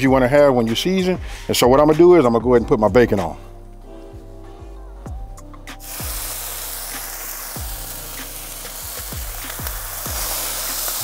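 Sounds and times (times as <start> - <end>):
background music: 0.0 - 11.0
bacon sizzling on griddle: 5.8 - 11.0.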